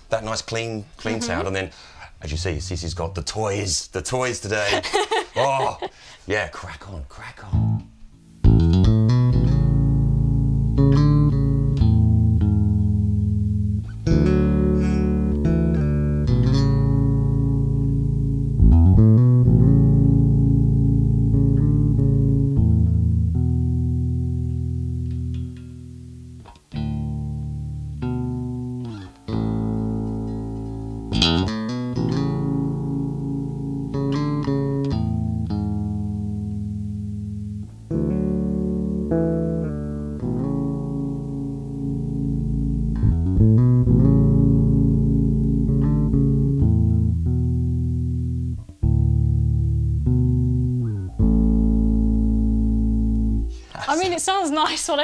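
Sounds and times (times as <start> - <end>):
electric bass plucked fingerstyle: 7.5 - 53.8.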